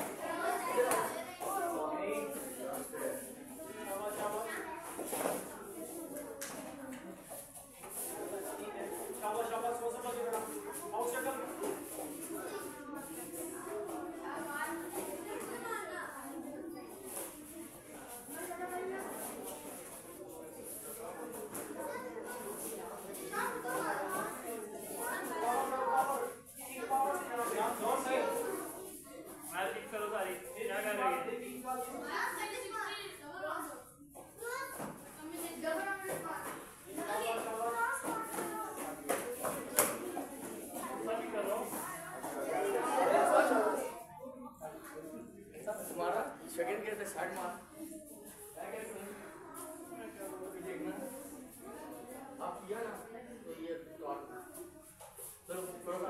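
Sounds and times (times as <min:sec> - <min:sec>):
children chattering: 0:00.0 - 0:56.0
voices in echoing hall: 0:00.0 - 0:56.0.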